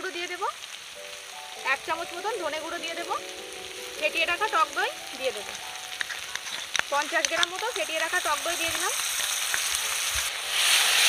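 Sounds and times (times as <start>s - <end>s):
masala sizzling in hot oil: 0.0s - 11.0s
person speaking: 1.6s - 9.1s.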